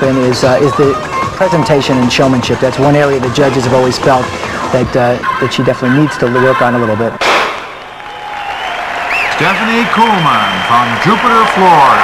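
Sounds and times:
audience applause and cheering: 7.6 - 12.0.

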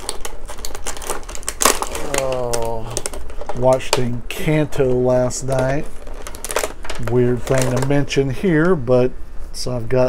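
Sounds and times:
plastic packaging crinkling: 0.0 - 8.8.

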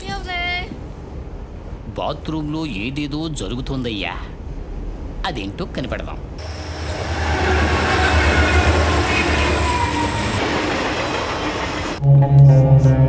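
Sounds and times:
train rumbling on rails: 0.0 - 12.0
whining tones: 6.4 - 12.0
low ominous music: 6.4 - 13.0.

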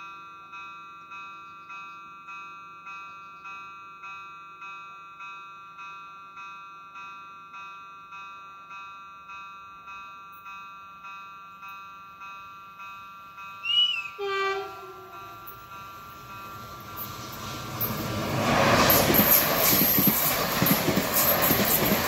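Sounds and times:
crossing warning bell: 0.0 - 22.0
train horn: 13.6 - 15.5.

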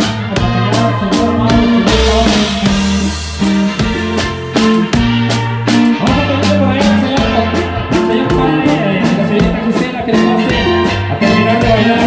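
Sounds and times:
bass guitar: 0.0 - 12.0
drum kit: 0.0 - 12.0
guitar: 0.0 - 12.0.

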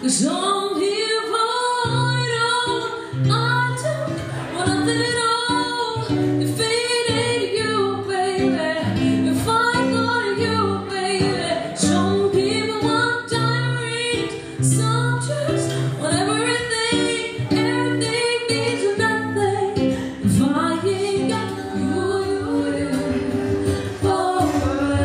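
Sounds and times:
acoustic guitar: 0.0 - 25.0
woman singing: 0.0 - 25.0.

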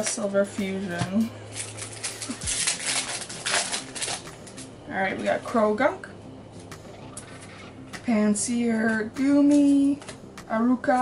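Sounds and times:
foil wrapper tearing and crinkling: 1.5 - 4.7.

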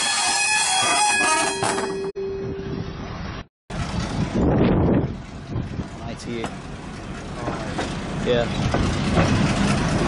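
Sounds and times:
wind buffeting microphone: 2.4 - 6.8.

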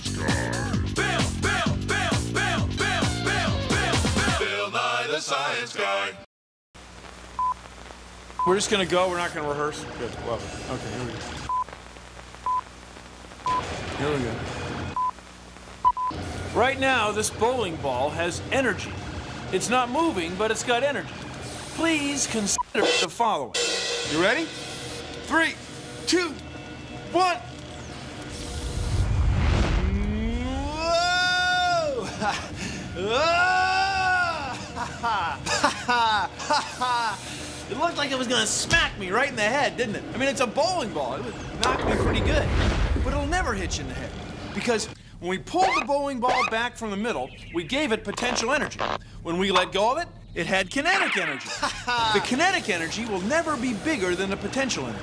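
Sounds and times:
theme music: 0.0 - 5.3, 22.8 - 30.9
low rushing whoosh: 28.6 - 30.8
man crying out in alarm: 30.3 - 35.5.

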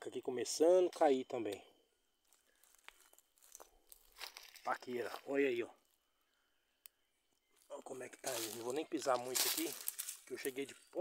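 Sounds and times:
footsteps crackling dry leaves: 2.2 - 5.5, 7.6 - 10.7.

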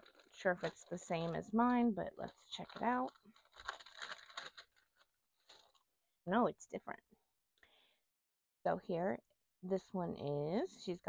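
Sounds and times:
paper bag crinkling: 0.0 - 5.8.

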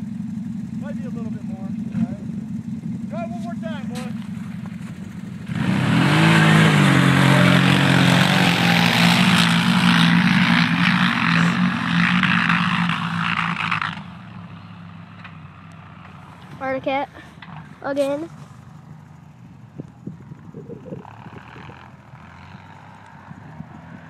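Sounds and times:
atv engines accelerating: 0.0 - 24.0
distant engine drone: 0.0 - 24.0.

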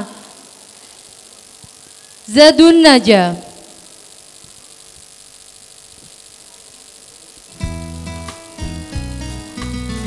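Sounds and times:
low electrical hum with hiss: 0.0 - 10.0.

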